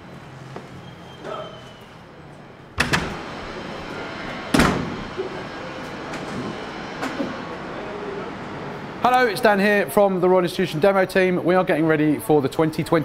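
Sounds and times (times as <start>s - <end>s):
steady background noise: 0.0s - 13.0s
door banging shut: 2.8s - 3.3s, 4.5s - 5.1s.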